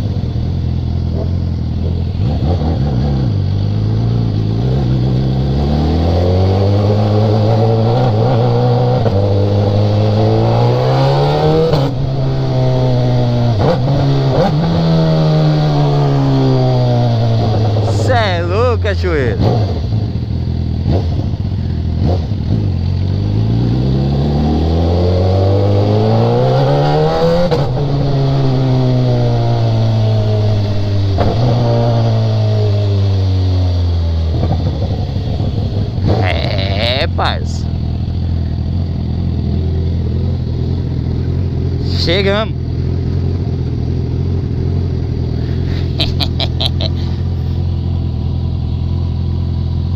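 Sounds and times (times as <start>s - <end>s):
motorcycle engine accelerating: 0.0s - 49.9s.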